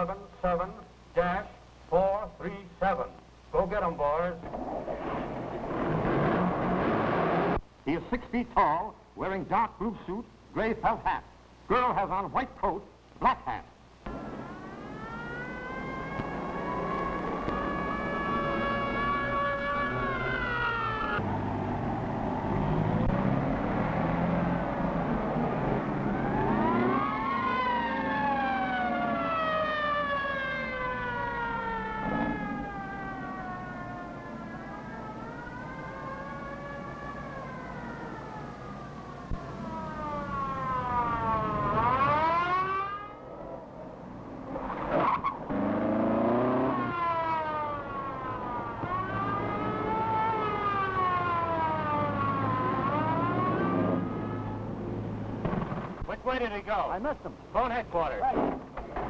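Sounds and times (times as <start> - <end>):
mechanical siren wailing: 14.1 - 43.8, 44.6 - 54.8.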